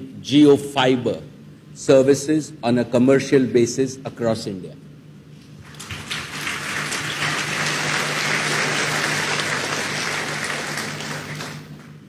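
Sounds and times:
audience applauding: 5.6 - 12.0.

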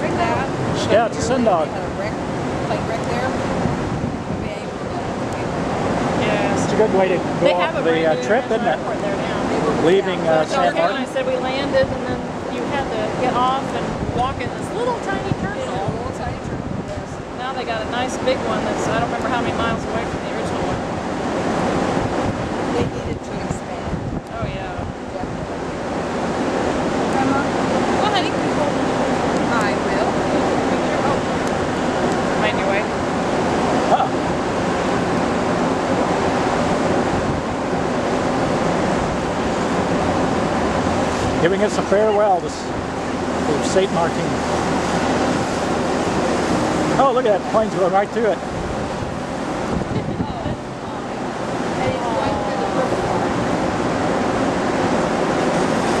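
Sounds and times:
wind and sea rushing: 0.0 - 56.0
wind buffeting microphone: 0.0 - 56.0
faint voices: 4.3 - 26.2, 26.8 - 36.0, 38.3 - 56.0.

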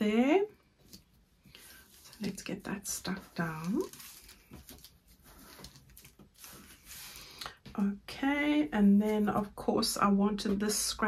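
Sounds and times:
faint rustling: 0.7 - 7.8.

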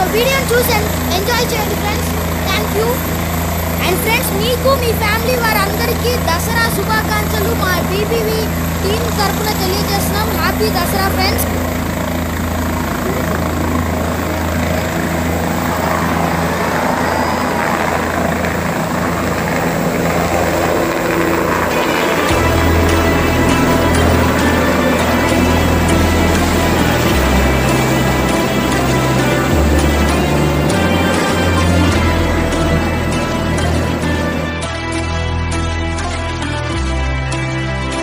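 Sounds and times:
helicopter rotor and engine: 0.0 - 38.0
music: 0.0 - 38.0.

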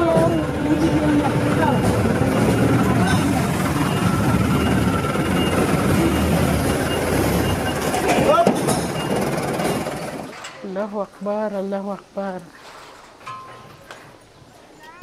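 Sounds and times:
vehicle engines rumbling: 0.0 - 12.1.

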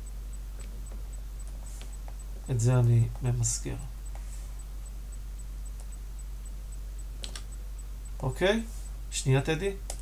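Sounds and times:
low electrical hum: 0.0 - 10.0
keyboard key clicks: 7.2 - 7.5.

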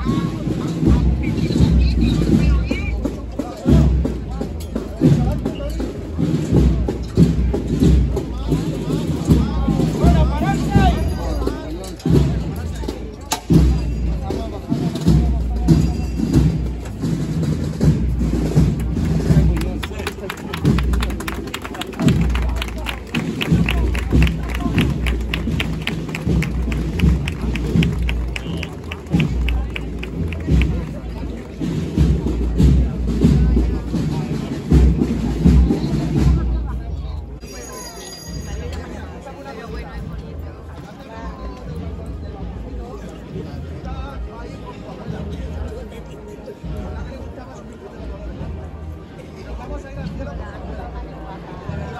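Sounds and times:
procession band with drumbeats: 0.0 - 37.7
outdoor crowd chatter: 0.0 - 51.9.

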